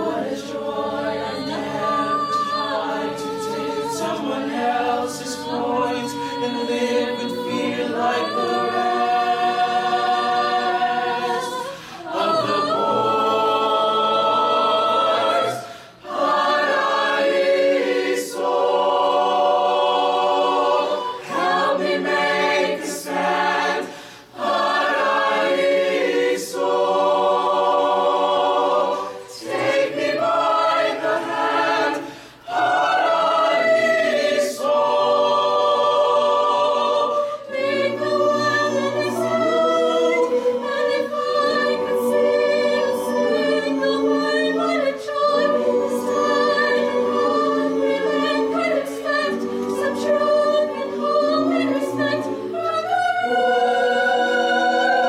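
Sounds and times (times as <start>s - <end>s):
choir singing held chords: 0.0s - 55.0s.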